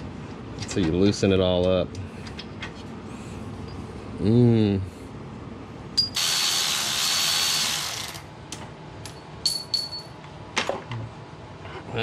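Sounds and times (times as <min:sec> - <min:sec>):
electric ratchet running: 0:06.1 - 0:08.3.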